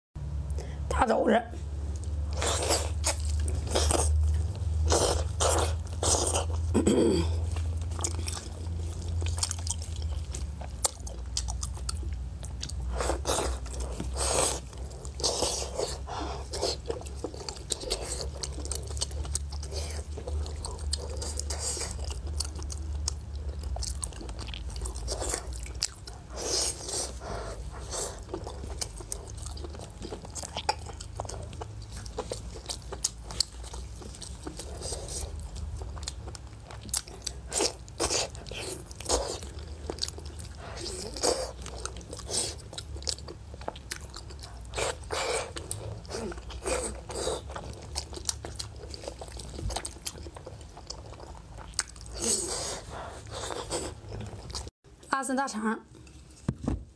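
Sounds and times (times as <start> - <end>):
steady low hum: 0.2 - 56.9
wet chewing and bites: 1.9 - 54.7.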